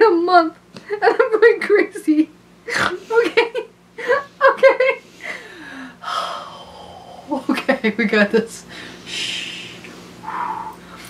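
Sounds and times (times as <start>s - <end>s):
woman giggling: 2.7s - 5.0s
long breathy gasp: 8.8s - 11.0s.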